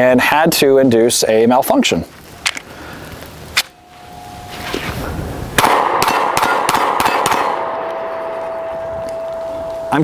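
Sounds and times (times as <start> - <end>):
faint steady tone: 3.7 - 5.4, 7.7 - 10.0.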